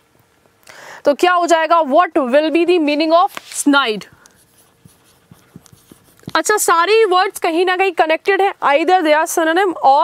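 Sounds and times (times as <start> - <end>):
marker writing on whiteboard: 3.4 - 6.6.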